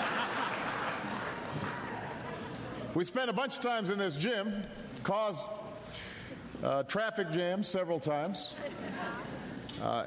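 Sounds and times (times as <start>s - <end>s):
audience applauding: 0.0s - 2.3s
audience laughing: 0.0s - 2.9s, 8.6s - 9.6s.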